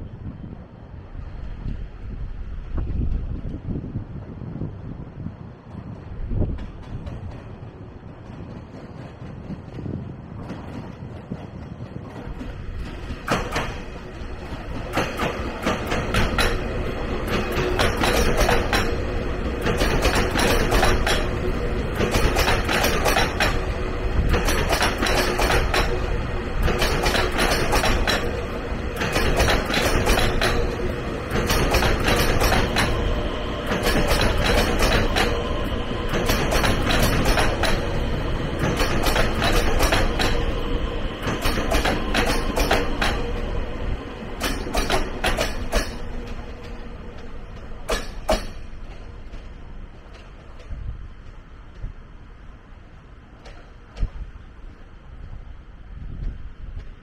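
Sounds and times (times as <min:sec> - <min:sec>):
steady train hum: 0:00.0 - 0:57.0
train rumbling past: 0:00.0 - 0:57.0
wheels clacking over rail joints: 0:05.7 - 0:52.1, 0:53.0 - 0:54.9.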